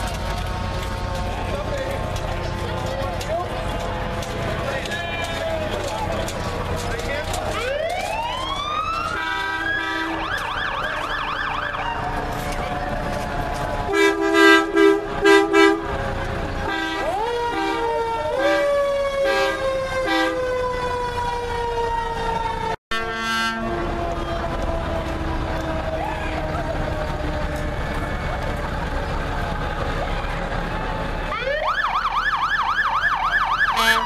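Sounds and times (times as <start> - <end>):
fire engine siren wailing: 0.0 - 34.0
loud short horn blasts: 13.9 - 15.9, 33.8 - 34.0.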